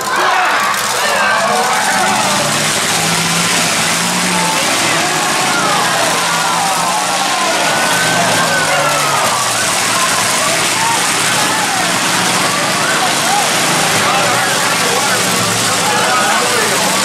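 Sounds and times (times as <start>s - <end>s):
car engines running: 0.0s - 17.0s
voices: 0.0s - 17.0s.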